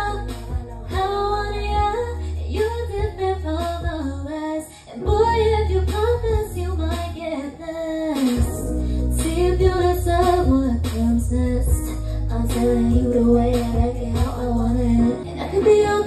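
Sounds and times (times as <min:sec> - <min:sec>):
pop karaoke backing track: 0:00.0 - 0:16.0
woman singing into microphone: 0:00.0 - 0:16.0.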